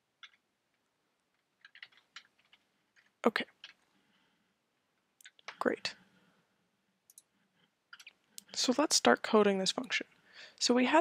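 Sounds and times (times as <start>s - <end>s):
faint keyboard typing: 0.2s - 4.1s, 4.8s - 6.0s, 7.0s - 8.6s.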